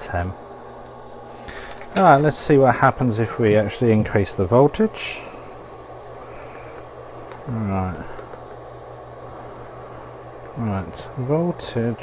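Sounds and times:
cooling fan humming: 0.0s - 12.0s.

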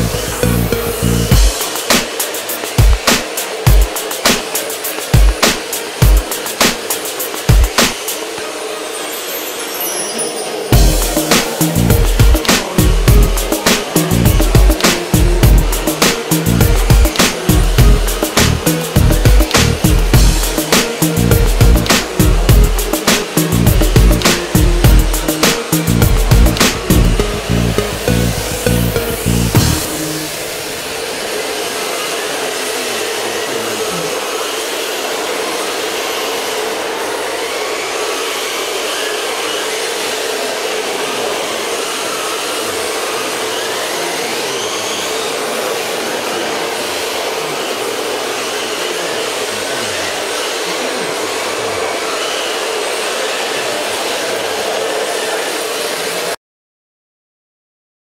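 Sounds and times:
music with a beat: 0.0s - 8.3s, 10.7s - 30.4s
rc car motors whirring and whining: 0.0s - 56.4s.

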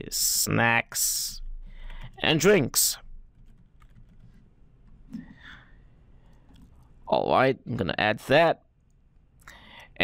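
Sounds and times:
faint keyboard typing: 1.7s - 5.5s, 6.1s - 7.0s.

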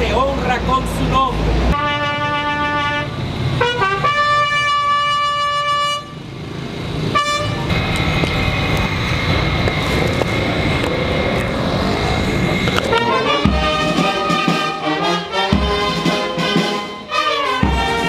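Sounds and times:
noisy outdoor din: 0.0s - 18.0s
brass band chord: 1.8s - 6.1s, 12.9s - 18.0s.

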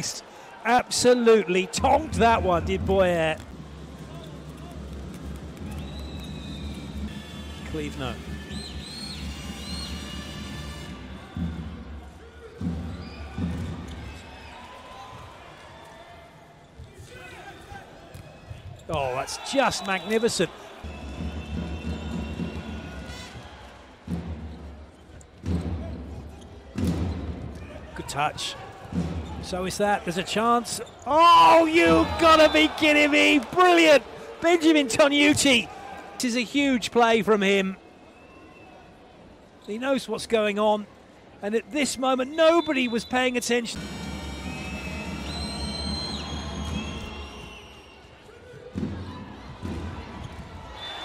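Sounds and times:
arena crowd rumble: 0.0s - 15.7s, 16.6s - 37.3s, 48.3s - 51.0s
referee's whistle: 8.3s - 10.9s, 19.0s - 20.4s, 31.4s - 33.4s, 42.2s - 48.1s, 50.8s - 51.0s.

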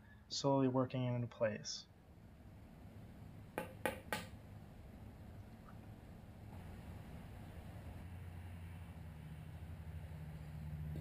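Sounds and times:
hammer striking plastic pipe: 3.6s - 4.4s.

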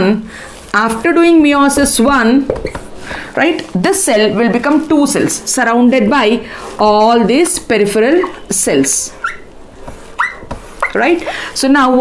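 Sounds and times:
marker squeaking on whiteboard: 2.5s - 2.9s, 8.1s - 11.4s.

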